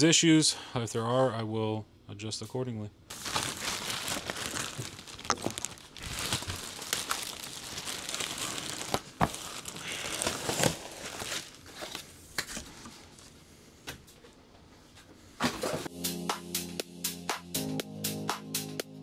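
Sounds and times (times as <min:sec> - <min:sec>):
plastic bag crinkling: 0:03.1 - 0:12.1.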